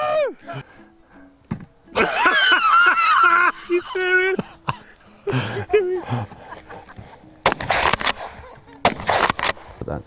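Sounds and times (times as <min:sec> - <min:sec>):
person laughing: 0:02.0 - 0:07.3, 0:08.2 - 0:08.8
rifle shots: 0:07.4 - 0:09.8.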